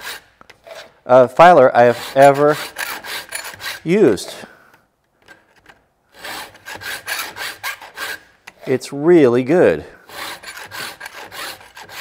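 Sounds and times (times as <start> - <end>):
metal files rasping on chain: 1.8 - 4.3, 6.2 - 8.2, 10.1 - 12.0.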